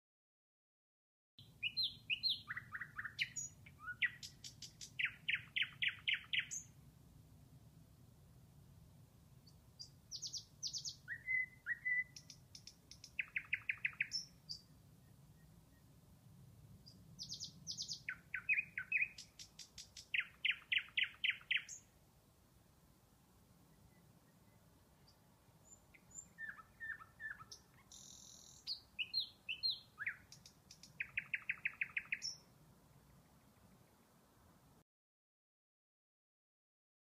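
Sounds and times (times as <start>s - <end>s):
songbird trills and chirps: 1.4s - 6.8s, 9.4s - 16.0s, 16.7s - 22.0s, 23.6s - 34.5s.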